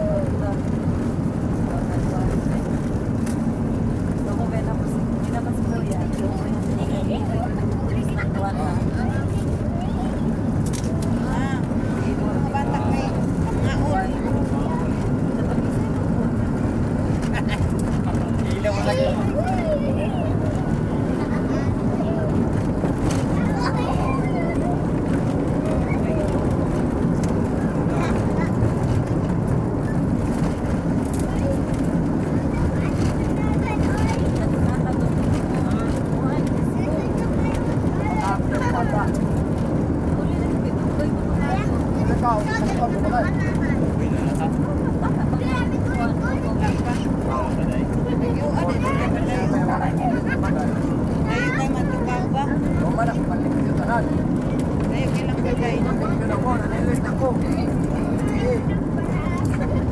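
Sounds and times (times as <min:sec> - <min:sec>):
vehicle engine and road noise: 0:00.0 - 0:59.9.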